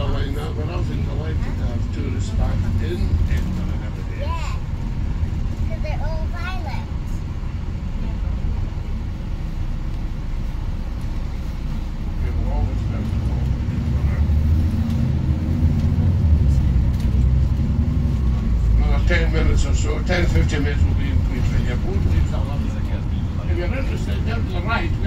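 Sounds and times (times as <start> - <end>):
tour guide speaking: 0.0 - 4.8, 5.4 - 7.1, 18.4 - 25.0
bus engine and road rumble: 0.0 - 25.0.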